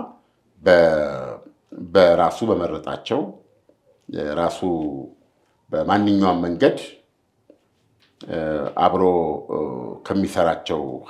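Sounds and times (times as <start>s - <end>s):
man talking: 0.0s - 7.1s, 8.2s - 11.0s.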